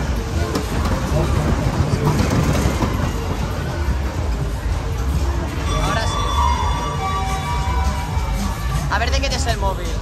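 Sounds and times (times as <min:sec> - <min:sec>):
ride cars rumbling on metal deck: 0:00.0 - 0:05.0
people's voices: 0:00.0 - 0:10.0.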